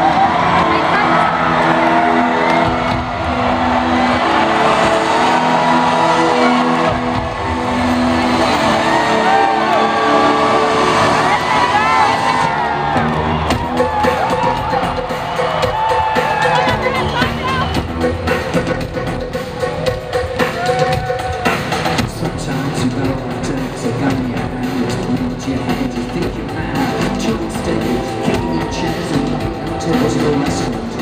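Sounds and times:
crowd cheering and whooping: 0:00.0 - 0:22.0, 0:27.4 - 0:31.0
music beat: 0:00.0 - 0:31.0
synthesizer chords: 0:00.0 - 0:31.0.

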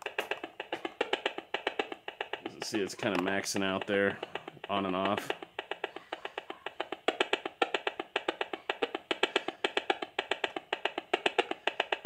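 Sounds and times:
fast even electronic clicking: 0:00.0 - 0:12.0.

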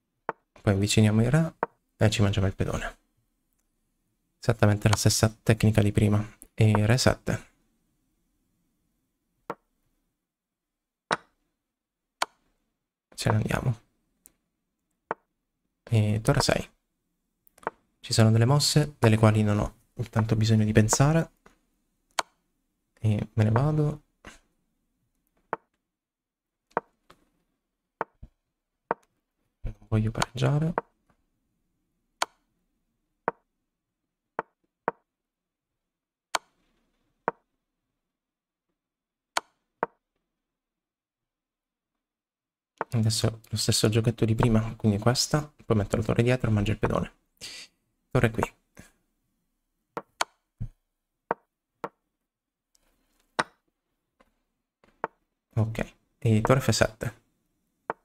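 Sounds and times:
chess move clicks: 0:11.1 - 0:11.4, 0:12.2 - 0:12.5, 0:17.5 - 0:17.8, 0:30.1 - 0:31.0, 0:32.2 - 0:32.4, 0:36.4 - 0:36.7
wooden knocks of chess moves: 0:11.1 - 0:11.4, 0:17.5 - 0:17.8, 0:20.9 - 0:21.6, 0:25.3 - 0:25.8, 0:26.7 - 0:27.4, 0:28.0 - 0:29.2, 0:30.1 - 0:31.0, 0:33.2 - 0:33.5, 0:34.4 - 0:35.1, 0:36.4 - 0:37.5, 0:39.4 - 0:40.0, 0:50.0 - 0:52.0, 0:53.1 - 0:55.2, 0:56.4 - 0:56.6.

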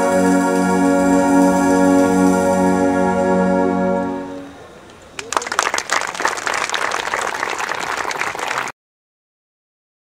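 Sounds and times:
audience clapping: 0:05.1 - 0:08.8.

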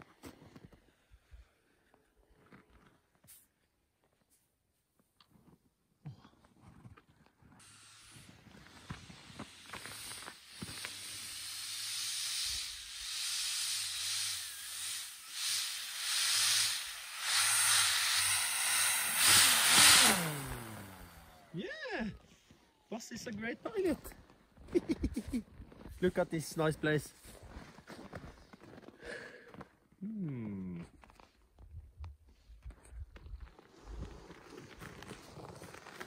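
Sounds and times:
electric motor and propeller whoosh: 0:07.6 - 0:21.5.

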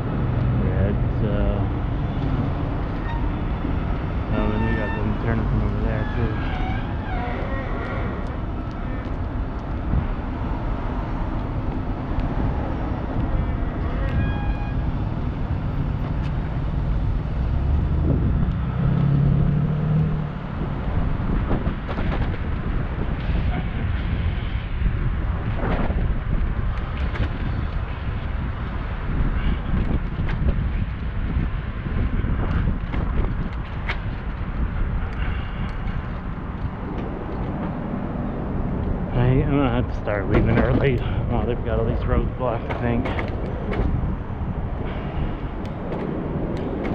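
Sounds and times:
car traffic: 0:00.0 - 0:46.9
vehicle engine hum: 0:00.0 - 0:46.9
wind rushing over microphone: 0:00.0 - 0:46.9.

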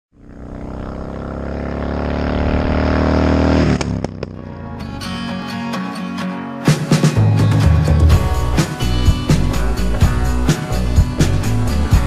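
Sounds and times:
motorcycle engine revving: 0:00.1 - 0:04.8
rock music with guitar: 0:04.2 - 0:12.0.

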